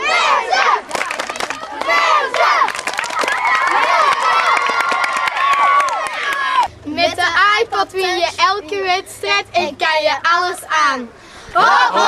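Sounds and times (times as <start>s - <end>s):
children cheering and shouting: 0.0s - 6.8s, 11.5s - 12.0s
hands clapping: 0.9s - 6.5s.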